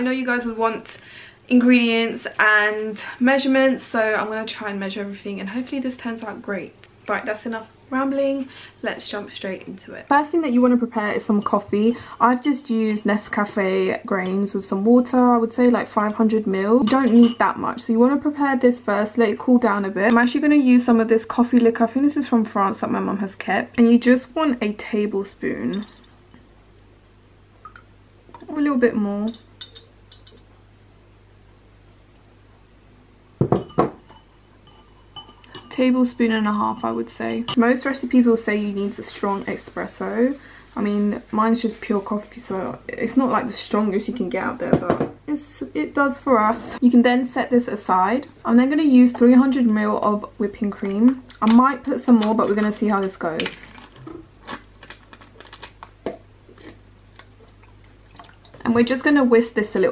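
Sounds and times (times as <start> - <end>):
low steady hum: 0.0 - 59.9
teaspoon clinking against bowl: 29.3 - 30.4, 33.6 - 35.8.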